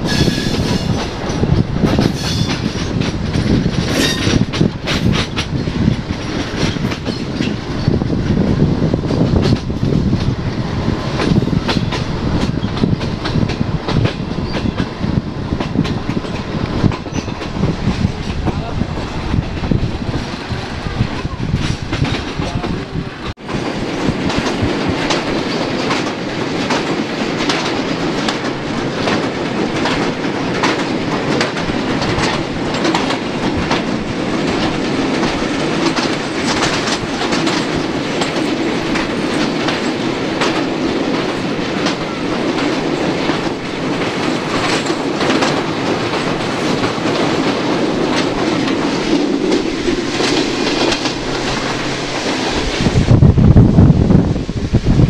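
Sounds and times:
wheels clacking over rail joints: 0:00.0 - 0:53.2
train running rumble: 0:00.0 - 0:55.0.

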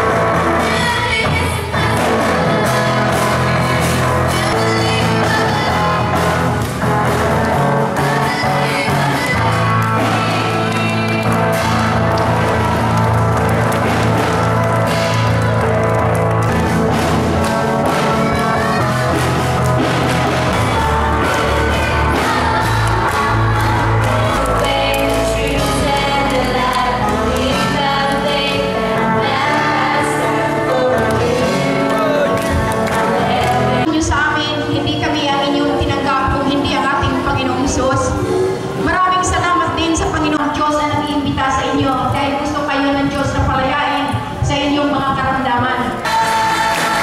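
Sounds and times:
person singing: 0:00.0 - 0:06.4, 0:07.6 - 0:11.9, 0:17.8 - 0:39.0
drums: 0:00.0 - 0:47.0
electric guitar: 0:00.0 - 0:47.0.

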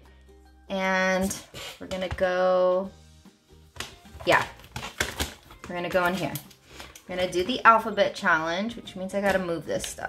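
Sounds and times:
binder being handled: 0:03.7 - 0:07.6.

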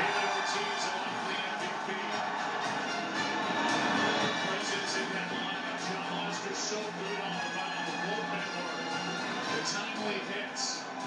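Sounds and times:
music through tv speakers: 0:00.0 - 0:11.0.

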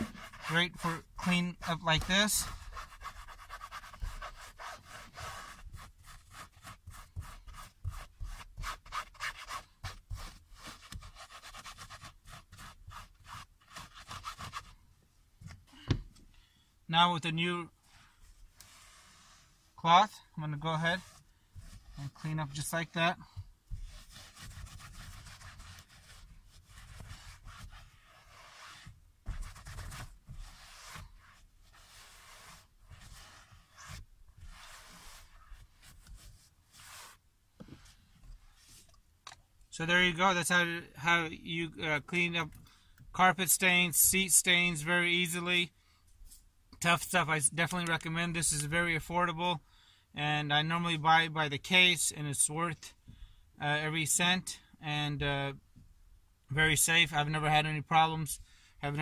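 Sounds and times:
brush scrubbing fabric seat: 0:00.0 - 0:14.8, 0:17.9 - 0:19.8, 0:20.5 - 0:38.9.

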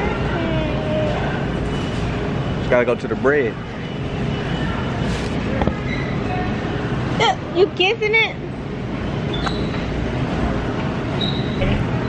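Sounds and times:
supermarket background rumble: 0:00.0 - 0:12.0.

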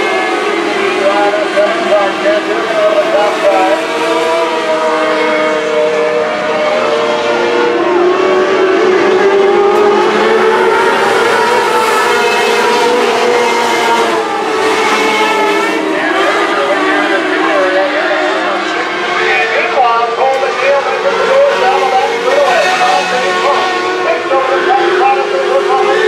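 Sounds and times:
race car engines: 0:00.0 - 0:26.0.

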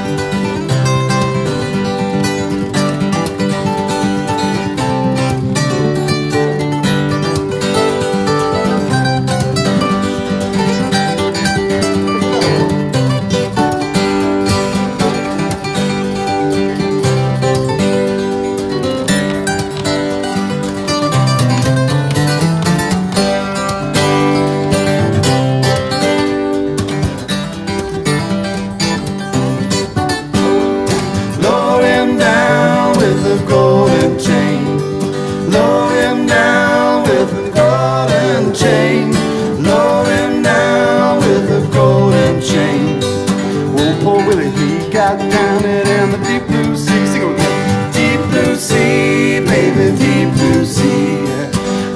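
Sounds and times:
acoustic guitars playing blues: 0:00.0 - 0:51.9.

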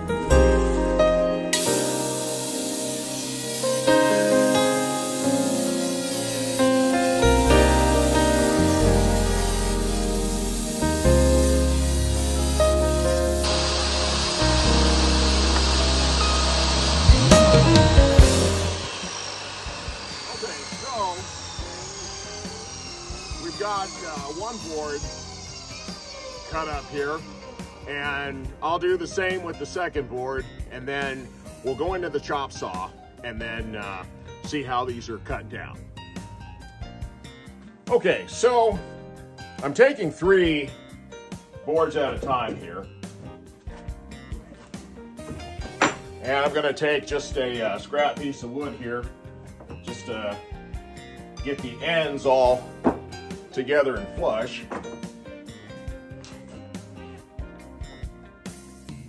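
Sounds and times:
background music with bass line: 0:00.0 - 0:19.0, 0:26.6 - 0:59.0
table saw cutting boards: 0:00.8 - 0:29.9, 0:45.2 - 0:48.8, 0:51.5 - 0:55.3.

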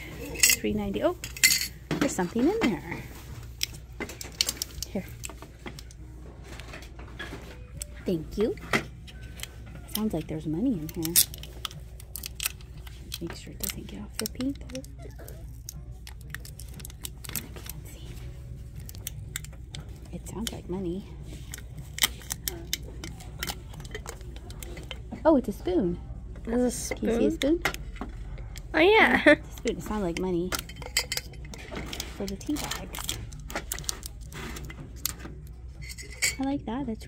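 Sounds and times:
metal spoon rattling in ceramic canister: 0:00.2 - 0:02.2, 0:29.6 - 0:35.1, 0:35.8 - 0:36.5.

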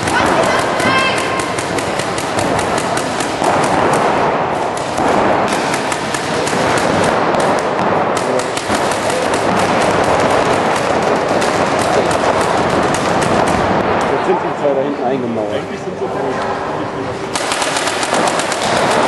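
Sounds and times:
paintball markers firing: 0:00.0 - 0:14.2, 0:17.3 - 0:19.0.

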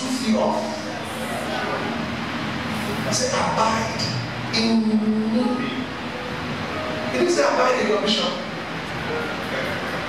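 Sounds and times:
steady background sound: 0:00.0 - 0:10.0.

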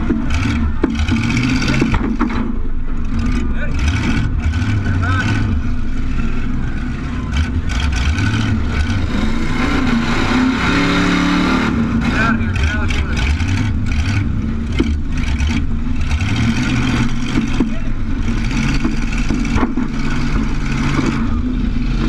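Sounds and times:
car engine revving: 0:00.0 - 0:22.0
mechanical rattling: 0:12.2 - 0:22.0.

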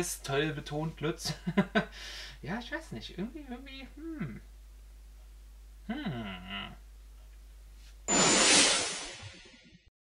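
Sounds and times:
steady hum: 0:03.5 - 0:09.7
whoosh sound effect: 0:08.1 - 0:09.6.

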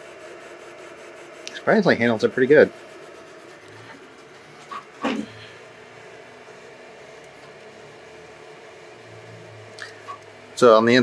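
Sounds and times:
three d printer motors humming: 0:00.0 - 0:11.0.

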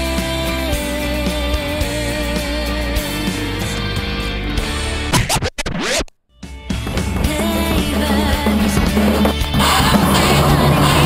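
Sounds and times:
record scratch sweeps: 0:05.1 - 0:06.1
theme music: 0:06.6 - 0:11.0.

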